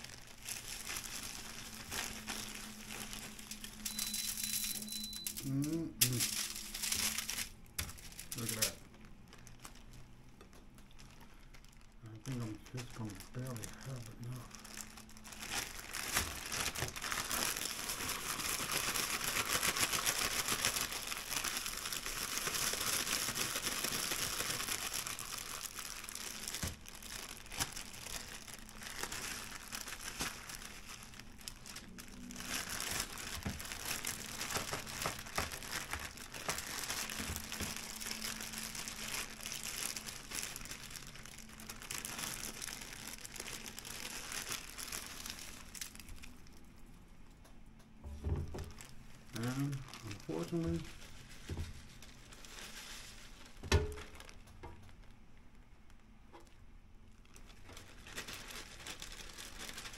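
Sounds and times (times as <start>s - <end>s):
plastic bag crinkling: 0.0s - 47.0s, 48.5s - 59.9s.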